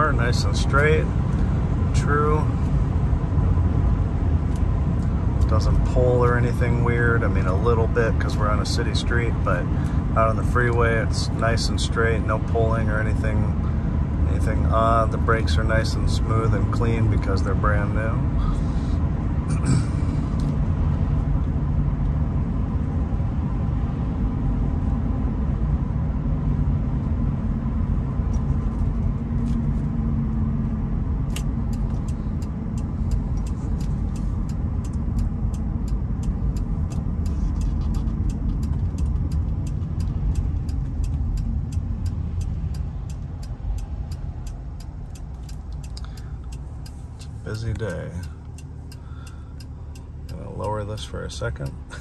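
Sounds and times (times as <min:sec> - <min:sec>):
turn signal ticking: 0:00.0 - 0:19.2, 0:27.9 - 0:52.0
car road and engine rumble: 0:00.0 - 0:52.0.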